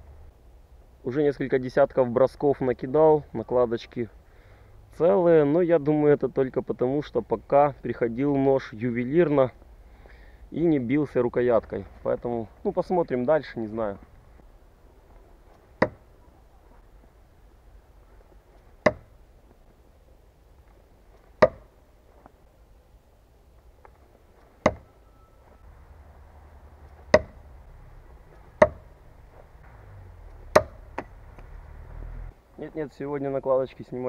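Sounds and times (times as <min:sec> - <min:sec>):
knife striking wooden target: 0:15.8 - 0:16.0, 0:18.8 - 0:19.1, 0:21.4 - 0:21.7, 0:24.6 - 0:24.9, 0:27.1 - 0:27.4, 0:28.6 - 0:28.9, 0:30.5 - 0:31.1.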